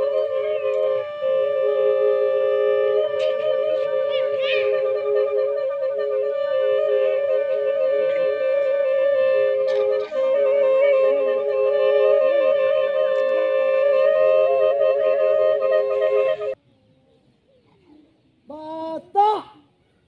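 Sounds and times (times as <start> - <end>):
flute-like wind notes: 0.0 - 16.6.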